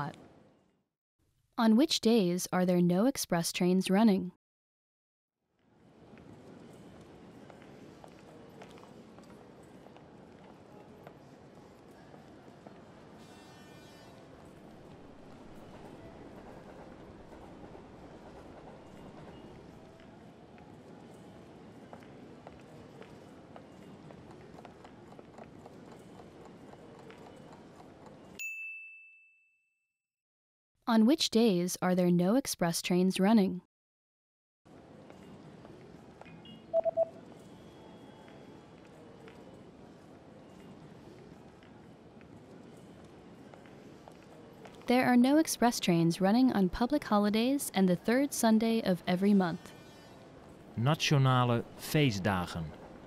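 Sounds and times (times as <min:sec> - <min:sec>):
quick electronic beeps: 0:36.4 - 0:37.2.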